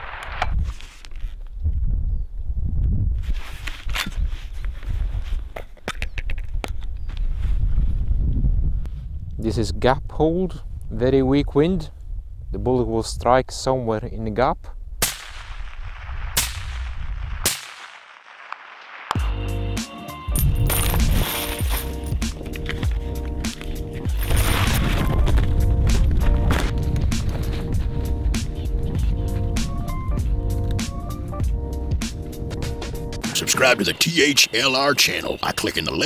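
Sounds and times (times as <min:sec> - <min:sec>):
sharp cracks: 0:15.0 - 0:19.2
instrumental music with steady beat: 0:19.2 - 0:24.4, 0:25.5 - 0:33.6.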